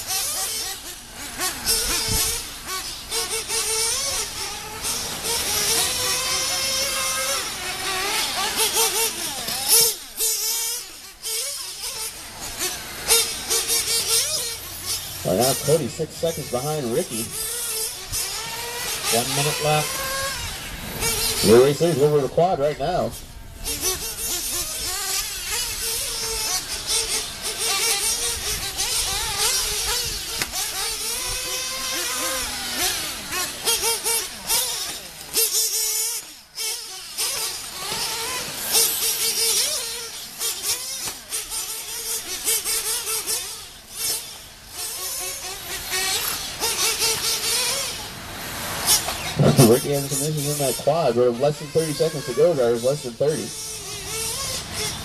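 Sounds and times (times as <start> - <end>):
rc car engines revving: 0.0 - 55.0.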